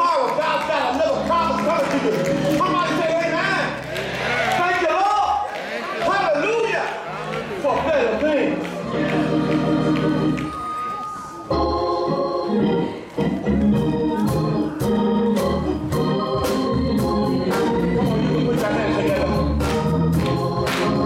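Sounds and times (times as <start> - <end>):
gospel church organ chords: 0.0 - 21.0
sharp rhythmic taps: 15.4 - 21.0.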